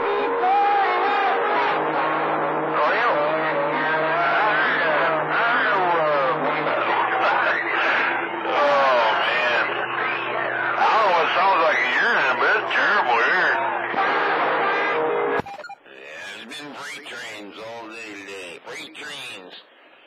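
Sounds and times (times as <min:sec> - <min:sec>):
garbled voices over radio: 0:10.8 - 0:13.6, 0:15.8 - 0:19.7.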